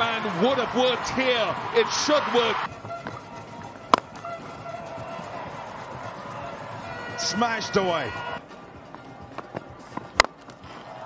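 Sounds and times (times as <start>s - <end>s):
stadium crowd: 0.0s - 11.0s
faint background music: 2.7s - 11.0s.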